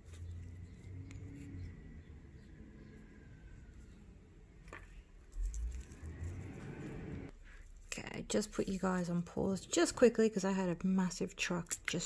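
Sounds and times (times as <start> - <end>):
heavy truck driving past: 0.2 - 4.4, 5.4 - 7.3.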